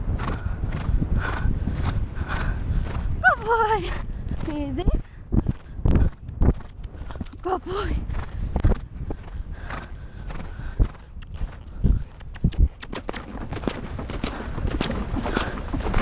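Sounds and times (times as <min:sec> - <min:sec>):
horse hoofbeats on grass: 0:00.0 - 0:16.0
wind rumble on microphone: 0:00.0 - 0:16.0.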